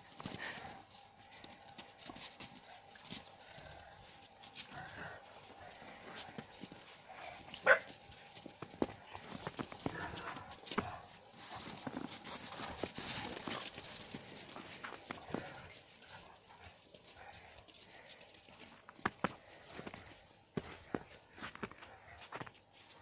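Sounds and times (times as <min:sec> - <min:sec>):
dog yelp: 0:07.6 - 0:07.9.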